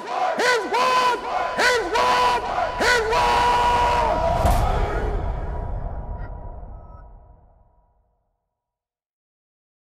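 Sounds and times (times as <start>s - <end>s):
voice-like chanted calls: 0.0s - 6.4s.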